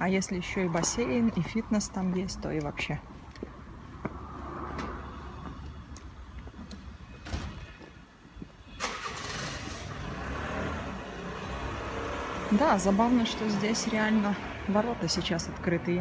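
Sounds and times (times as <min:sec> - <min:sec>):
low traffic rumble: 0:00.0 - 0:16.0.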